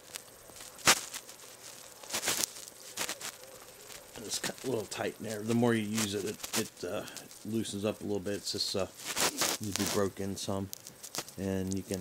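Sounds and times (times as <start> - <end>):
scraping and crinkling handling: 0.0 - 12.0.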